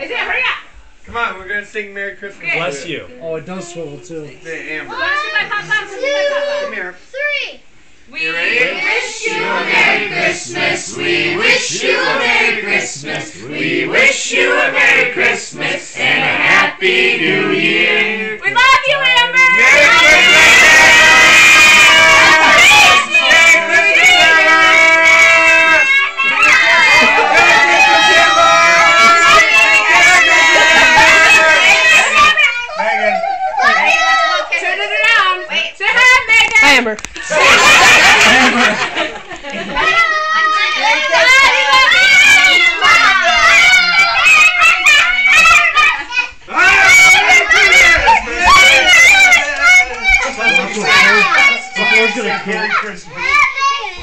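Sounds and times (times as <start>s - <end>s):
children shouting high-pitched: 18.6s - 36.5s, 39.7s - 54.0s.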